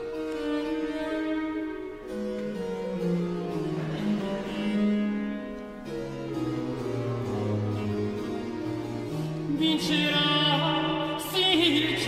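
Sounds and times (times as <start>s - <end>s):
baroque string ensemble: 0.0s - 12.0s
harpsichord: 0.0s - 12.0s.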